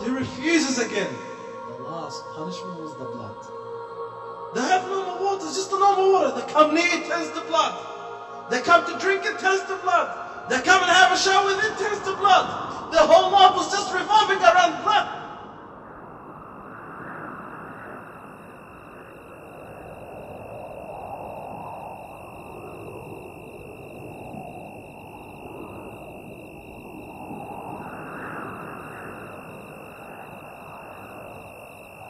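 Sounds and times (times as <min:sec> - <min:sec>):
rushing ambient drone: 0:00.0 - 0:32.0.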